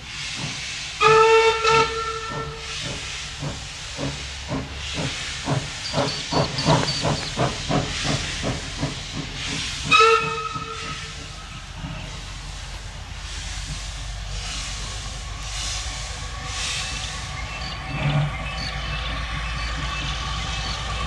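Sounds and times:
steady steam hiss: 0.0 - 21.0
steam locomotive whistle: 1.0 - 2.9, 9.8 - 11.4
rhythmic exhaust chuffs: 2.0 - 21.0.

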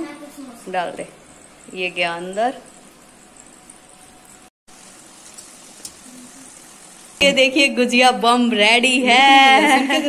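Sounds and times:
pastries sizzling in hot oil: 0.0 - 10.0.

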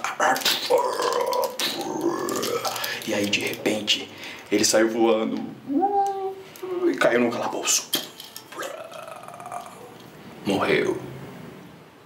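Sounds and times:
man growling: 0.7 - 2.8, 8.6 - 10.0.

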